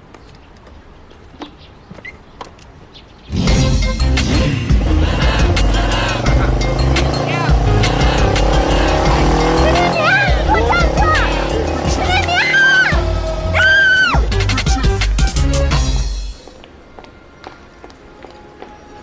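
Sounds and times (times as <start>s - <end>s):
motorcycle engine pulling away: 3.3s - 13.5s
background music: 3.3s - 19.0s
woman shouting: 9.5s - 14.3s.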